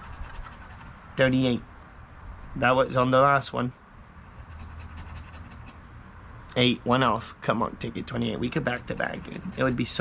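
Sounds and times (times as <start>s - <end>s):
coin scraping scratch card: 0.0s - 1.0s, 4.4s - 5.8s, 8.8s - 10.0s
low steady hum: 0.0s - 10.0s.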